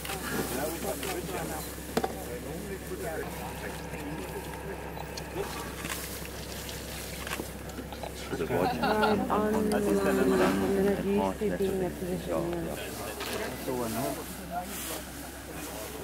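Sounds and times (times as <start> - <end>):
water sloshing in buckets: 0.0 - 8.5
people talking indistinctly: 0.0 - 16.0.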